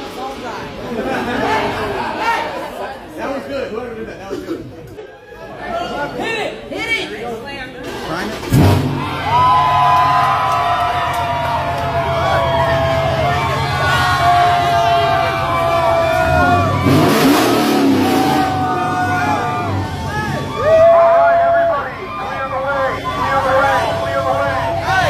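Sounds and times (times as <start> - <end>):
crowd cheering and whooping: 8.9 - 25.0.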